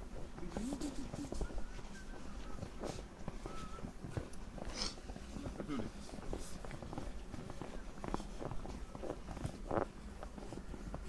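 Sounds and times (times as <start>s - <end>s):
footsteps crunching in snow: 0.0s - 11.0s
faint voices: 0.1s - 11.0s.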